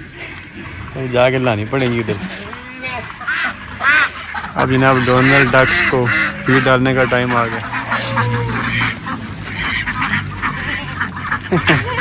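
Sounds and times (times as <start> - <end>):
ducks quacking: 0.0 - 12.0.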